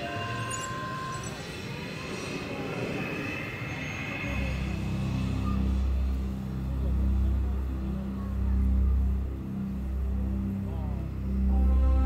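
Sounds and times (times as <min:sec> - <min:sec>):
faint crowd voices: 0:00.0 - 0:12.0
low mechanical rumble: 0:00.0 - 0:12.0.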